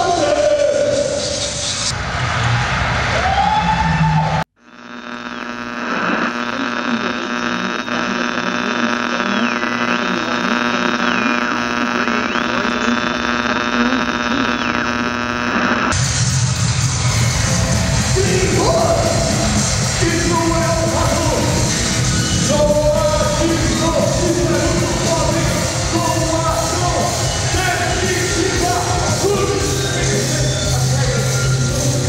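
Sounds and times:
electronic buzzing drone: 4.6s - 32.0s
loud live band music: 16.0s - 32.0s.

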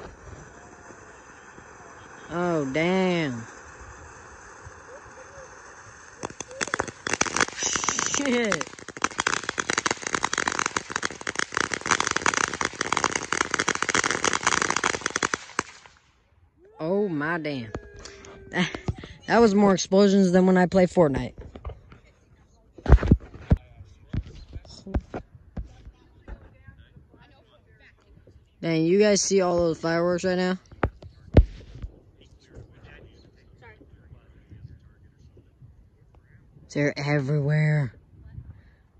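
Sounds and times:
firework fountain crackling: 0.0s - 16.2s, 17.2s - 21.6s, 28.7s - 36.1s.

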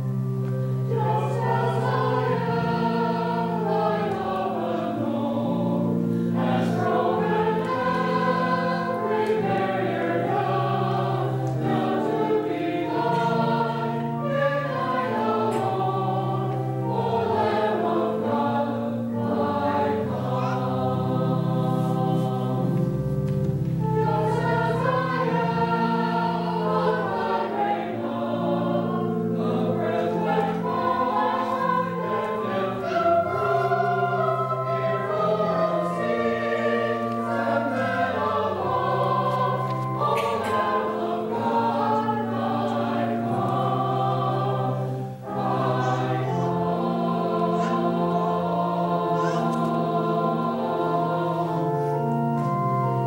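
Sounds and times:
group singing a hymn: 0.0s - 53.0s
organ chords: 0.0s - 53.0s.

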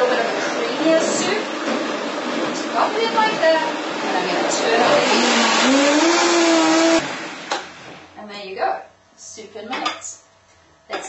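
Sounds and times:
blender motor whirring: 4.8s - 7.9s.

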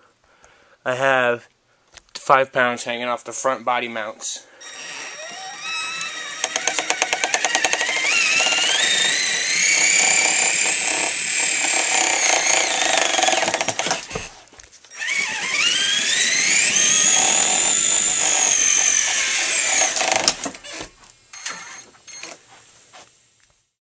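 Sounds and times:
electric motor and gears whining: 4.6s - 14.2s, 14.9s - 20.8s.

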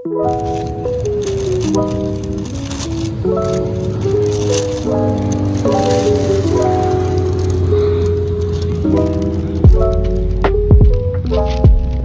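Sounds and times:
held chords: 0.0s - 12.0s
steady bass line: 9.1s - 12.0s.

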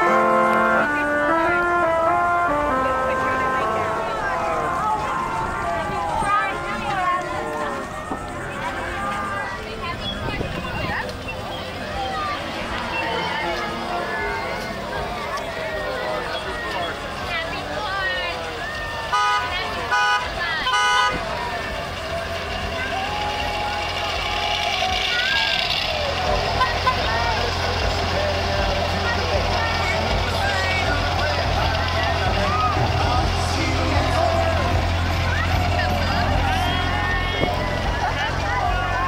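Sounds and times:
vehicle horn toots: 0.0s - 7.2s, 19.1s - 21.4s, 26.4s - 27.6s
crowd talking: 0.0s - 39.0s
low engine rumble: 0.0s - 39.0s.

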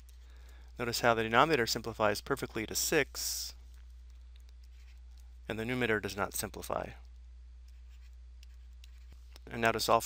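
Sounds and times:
steady low hum: 0.0s - 10.0s
stylus tapping and scratching: 3.6s - 5.4s, 6.9s - 9.5s.

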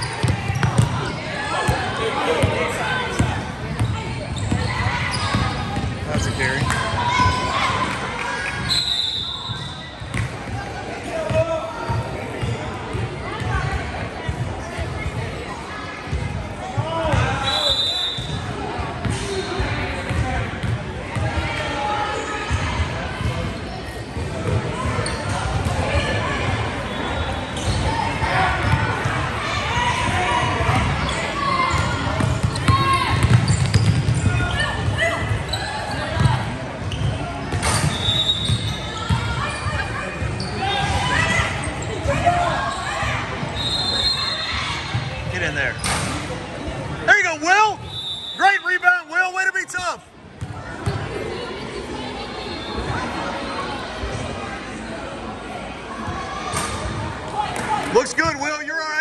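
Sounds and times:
voices echoing in hall: 0.0s - 59.0s.

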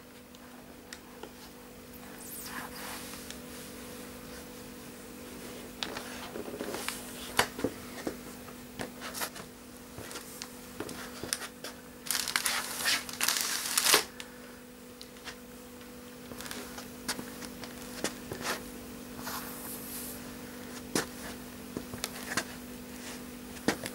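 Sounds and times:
faint steady hum: 0.0s - 23.9s
cellophane wrapping crinkling: 11.2s - 14.2s.

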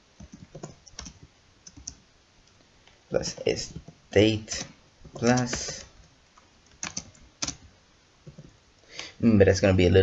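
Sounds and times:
keyboard key clicks: 6.8s - 7.6s.

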